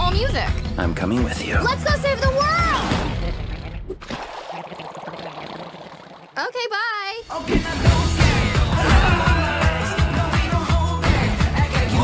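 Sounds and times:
water sloshing: 0:03.9 - 0:06.4.

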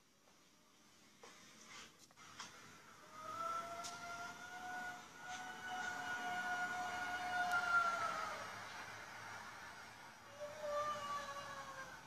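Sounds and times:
distant wailing tone: 0:03.0 - 0:12.0.

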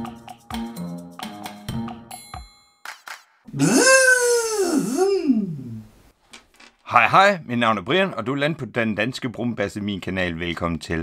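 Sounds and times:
voice-like wailing cry: 0:03.5 - 0:05.9.

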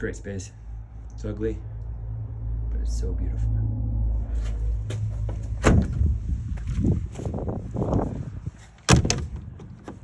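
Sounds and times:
low rumble: 0:00.0 - 0:08.6.

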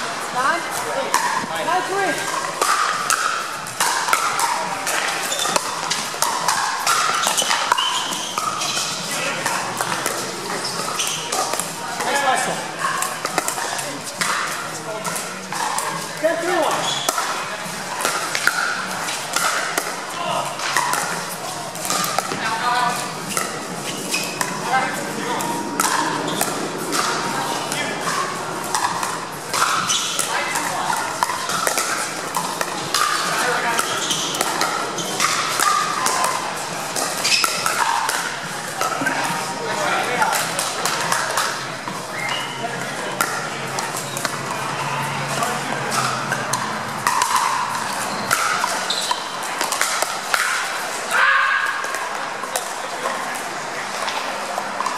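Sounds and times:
chatter of voices: 0:00.0 - 0:54.9.

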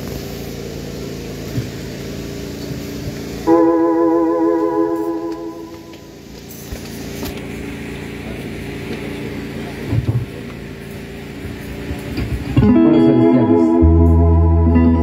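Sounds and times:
electronic organ chords: 0:03.4 - 0:06.2, 0:12.6 - 0:15.0.

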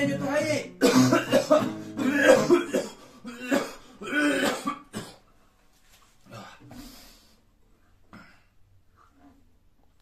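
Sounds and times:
man singing: 0:00.0 - 0:01.7
acoustic guitar: 0:00.0 - 0:05.3
man coughing: 0:00.8 - 0:05.2.

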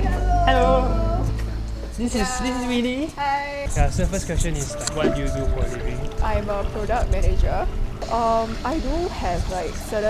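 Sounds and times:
person calling in sing-song: 0:00.0 - 0:01.4
background music: 0:00.0 - 0:10.0.

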